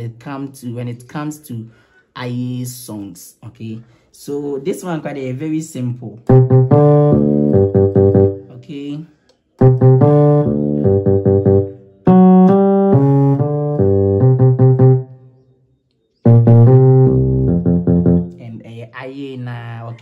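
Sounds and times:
electric piano bass line: 0:05.7 - 0:08.8, 0:09.6 - 0:15.3, 0:16.2 - 0:20.0.

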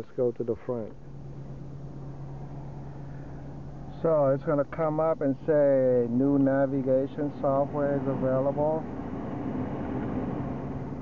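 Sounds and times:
car cabin hum and hiss: 0:00.0 - 0:11.0.

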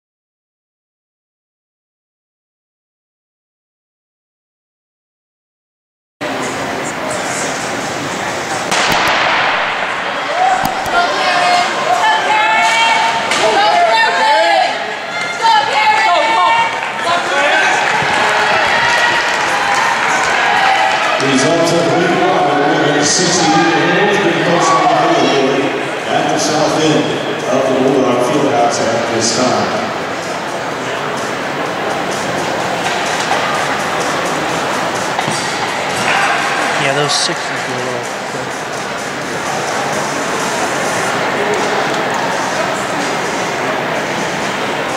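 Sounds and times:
spectators shouting and cheering: 0:06.2 - 0:28.8, 0:29.4 - 0:44.9
crowd murmur indoors: 0:06.2 - 0:44.9
starting gun crack: 0:08.7 - 0:09.9.

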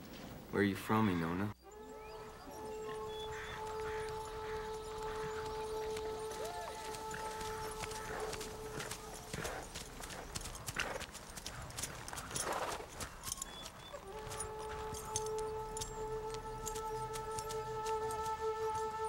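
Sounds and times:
sustained film-score notes: 0:01.6 - 0:10.3, 0:13.5 - 0:19.0
horse sounds: 0:02.2 - 0:19.0
horse hooves clopping on dirt: 0:02.3 - 0:19.0.

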